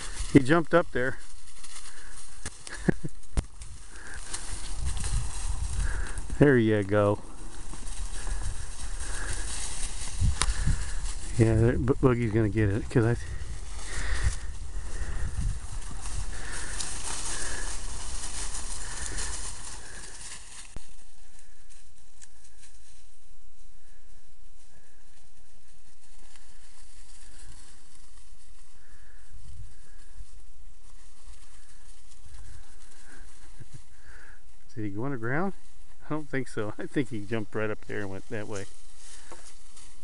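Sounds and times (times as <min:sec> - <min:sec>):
footsteps through dry brush: 0:00.0 - 0:40.0.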